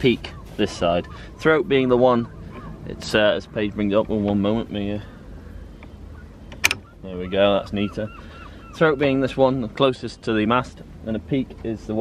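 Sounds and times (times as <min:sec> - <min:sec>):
low steady background: 0:00.0 - 0:12.0.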